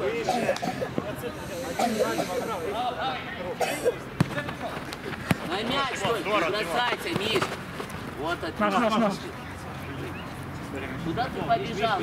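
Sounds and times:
players calling out: 0.0s - 7.5s.

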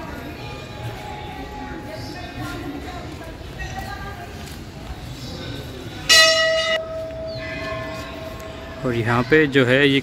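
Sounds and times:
metal bell ringing: 6.1s - 8.8s.

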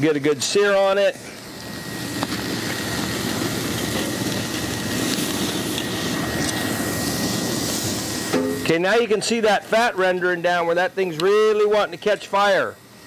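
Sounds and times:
steak sizzling on a grill: 0.0s - 13.0s.

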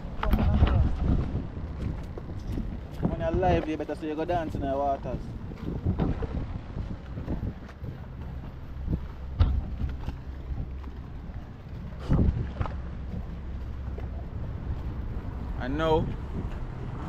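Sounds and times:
wind rumble on microphone: 0.0s - 17.0s
microphone handling knocks: 8.9s - 10.2s.

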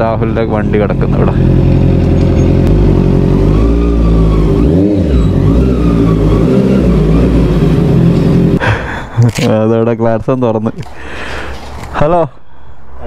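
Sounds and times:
motorcycle engine at low speed: 0.0s - 8.6s.

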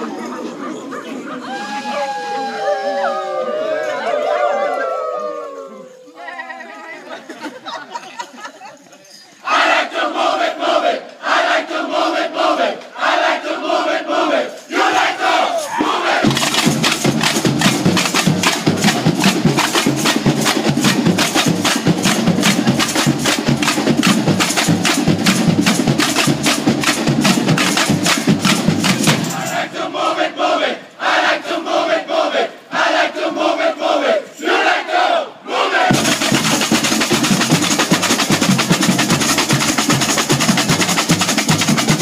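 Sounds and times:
group shouting in unison: 1.4s - 6.0s, 9.5s - 16.3s, 29.2s - 35.9s
samba drumming: 15.8s - 29.7s, 35.9s - 42.0s.

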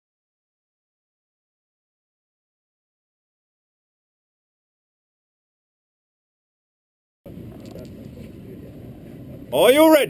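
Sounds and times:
ventilation low rumble: 7.3s - 10.0s.

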